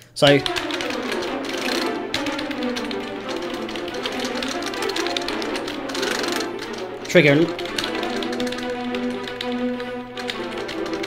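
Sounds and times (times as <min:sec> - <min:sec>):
keys hammered on keyboard: 0:00.2 - 0:11.0
spiccato strings rapid short notes: 0:00.2 - 0:11.0.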